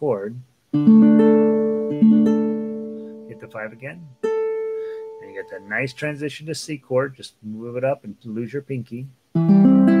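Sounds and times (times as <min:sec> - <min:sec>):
ukulele notes plucked: 0:00.7 - 0:06.0, 0:09.4 - 0:10.0.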